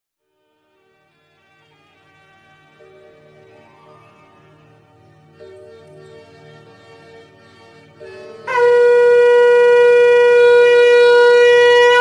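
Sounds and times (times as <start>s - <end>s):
conch shell blown: 8.2s - 12.0s.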